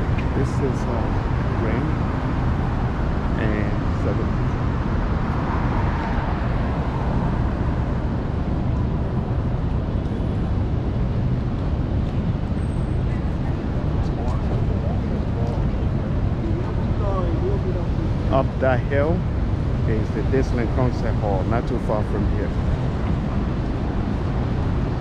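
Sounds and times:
road traffic rumble: 0.0s - 25.0s.

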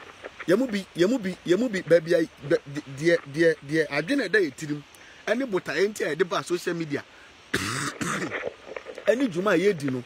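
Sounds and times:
man clearing his throat: 7.5s - 8.4s.

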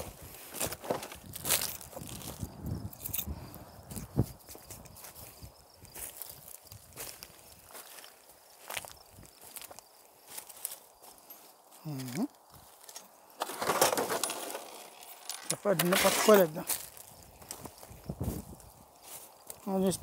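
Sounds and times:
footsteps crunching over debris: 0.0s - 3.2s, 3.9s - 19.8s.

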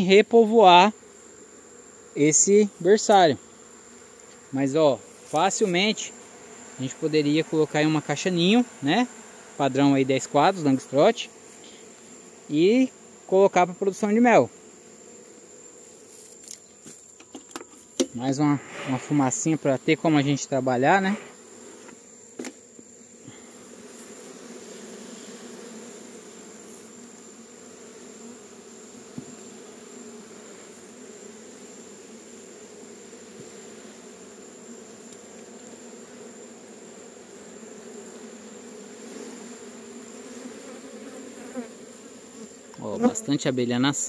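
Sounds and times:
honeybee colony buzzing: 0.0s - 44.0s.

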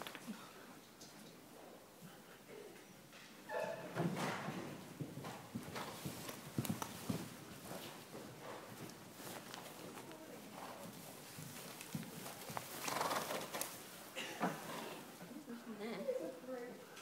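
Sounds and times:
horse hoofbeats on sand: 4.7s - 13.6s.

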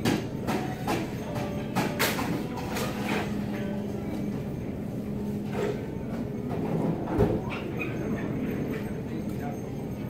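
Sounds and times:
groceries knocking and clattering: 0.0s - 4.6s
indistinct chatter: 0.0s - 10.0s
steady store hum: 0.0s - 10.0s.

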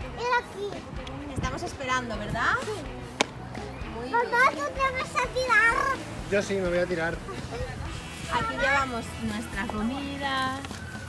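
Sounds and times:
young child speaking: 0.1s - 0.9s, 4.2s - 6.0s.

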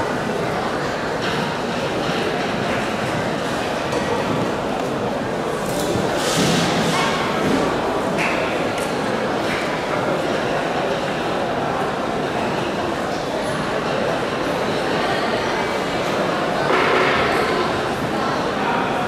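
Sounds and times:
indistinct chatter of many people: 0.0s - 19.0s.

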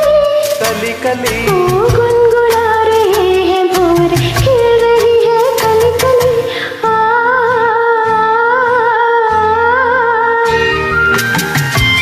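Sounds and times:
karaoke backing track: 0.0s - 12.0s.

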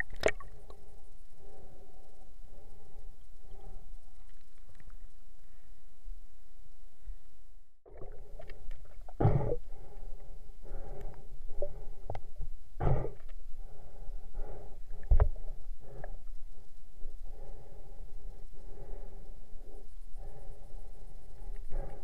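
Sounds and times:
muffled underwater water rushing: 7.8s - 10.0s.

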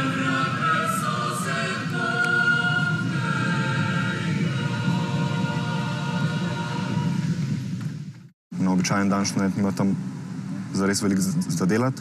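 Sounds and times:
choir singing long notes: 0.0s - 7.7s.

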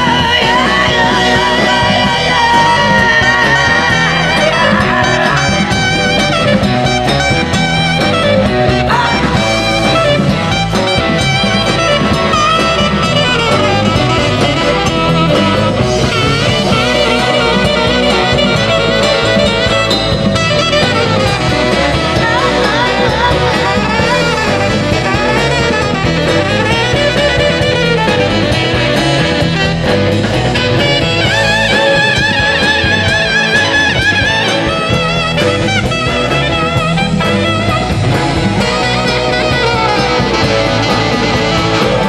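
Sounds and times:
bass: 0.0s - 42.0s
drums: 0.0s - 42.0s
saxophone solo: 0.0s - 42.0s.

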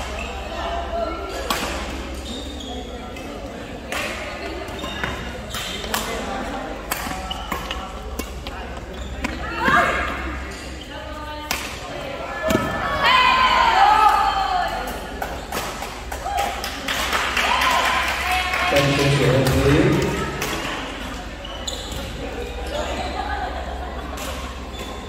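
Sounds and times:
shoes squeaking on floor: 0.0s - 3.4s, 4.6s - 5.9s, 7.0s - 11.3s, 20.6s - 23.2s, 24.3s - 25.0s
people talking: 0.0s - 15.4s, 17.5s - 25.0s.

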